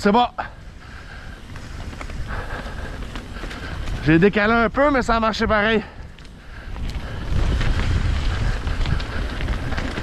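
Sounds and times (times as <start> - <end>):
bike tyres rolling on dirt: 0.0 - 10.0
wind rumbling on microphone: 0.0 - 10.0
light clicks from bike: 0.9 - 4.6, 5.6 - 10.0.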